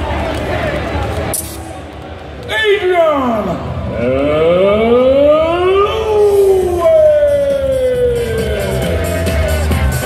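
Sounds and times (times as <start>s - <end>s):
crowd noise: 0.0s - 10.0s
siren-like wail over speakers: 3.8s - 9.1s.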